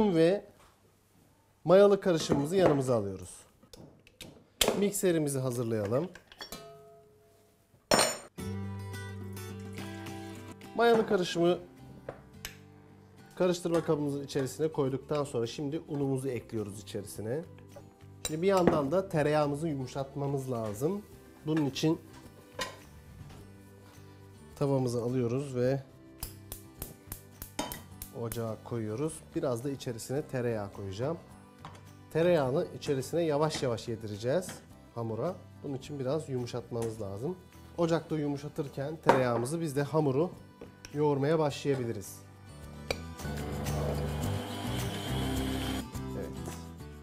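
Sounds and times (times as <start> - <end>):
background music: 1.6 - 3.6, 4.2 - 47.0.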